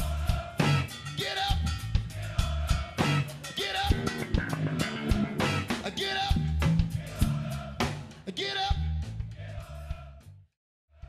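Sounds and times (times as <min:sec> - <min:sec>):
rock band playing live: 0:03.0 - 0:07.0.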